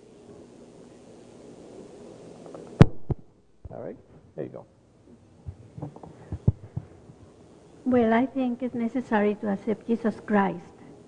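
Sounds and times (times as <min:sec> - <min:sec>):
microphone handling thumps: 0:05.4 - 0:07.3
person speaking: 0:07.8 - 0:10.7.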